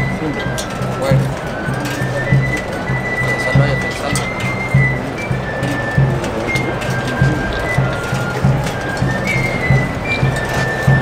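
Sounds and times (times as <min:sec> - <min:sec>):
processional band march: 0:00.0 - 0:11.0
long held high note: 0:03.9 - 0:11.0
bass drum beat: 0:04.9 - 0:09.2.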